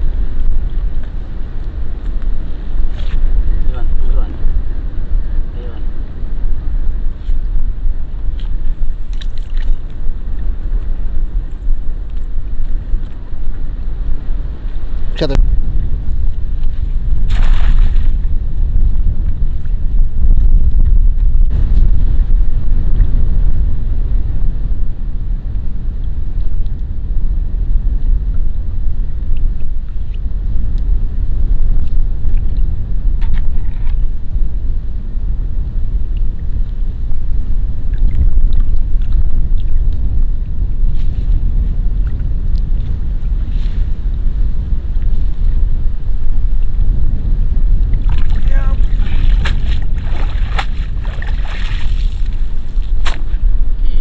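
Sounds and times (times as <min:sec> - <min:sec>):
wind buffeting microphone: 0:00.0 - 0:54.0
cast net splashing on water: 0:17.2 - 0:18.2, 0:48.1 - 0:52.2.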